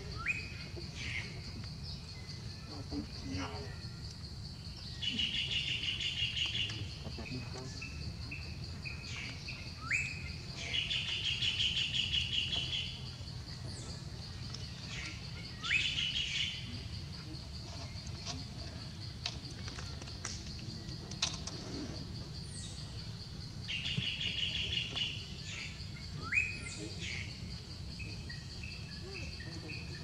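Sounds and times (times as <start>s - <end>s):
birds chirping: 0.0s - 30.0s.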